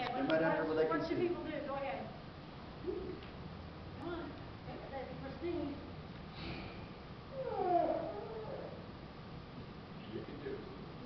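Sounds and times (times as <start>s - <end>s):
low room hum: 0.0s - 11.0s
child's wavering voice: 7.4s - 8.8s.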